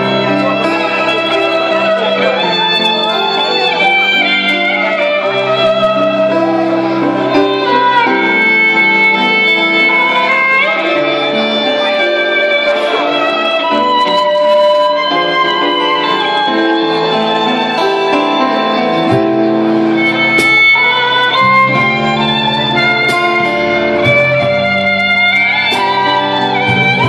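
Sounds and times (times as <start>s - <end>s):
keyboard accompaniment: 0.0s - 27.0s
violin long note: 0.0s - 27.0s.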